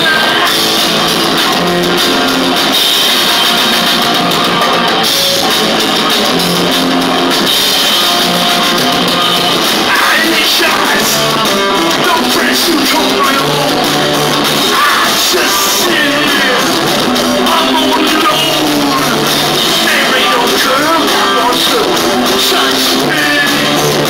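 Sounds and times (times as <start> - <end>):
bass guitar: 0.0 - 24.0
distorted electric guitar: 0.0 - 24.0
drums: 0.0 - 24.0.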